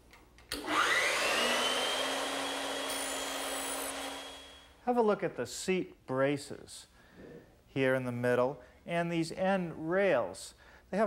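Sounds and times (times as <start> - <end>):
bandsaw motor whine: 0.6 - 4.7.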